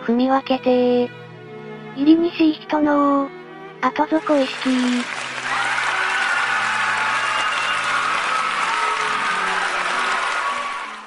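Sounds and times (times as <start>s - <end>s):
soft background music: 0.0s - 11.0s
applause: 4.2s - 11.0s.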